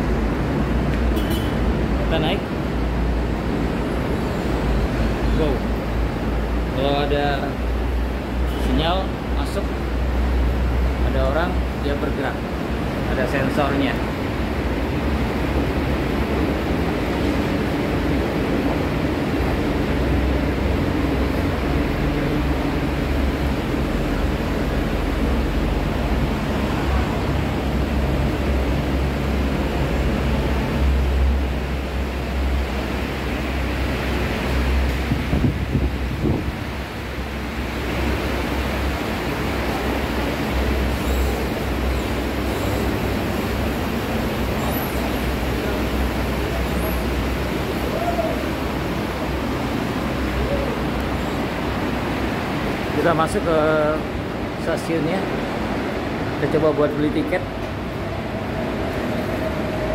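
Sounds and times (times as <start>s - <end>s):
traffic noise: 0.0s - 59.9s.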